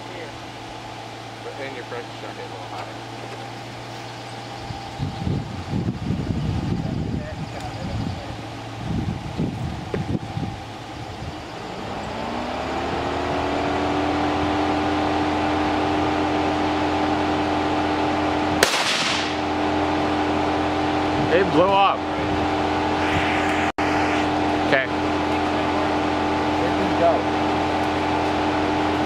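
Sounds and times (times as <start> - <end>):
motor humming: 0.0 - 18.6
gunshot: 18.6 - 19.4.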